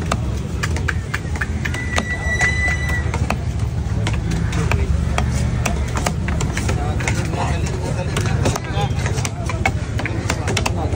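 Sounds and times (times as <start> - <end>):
high whistle-like tone: 1.6 - 3.2
knife chopping fish on wooden block: 3.1 - 7.4, 8.1 - 10.9.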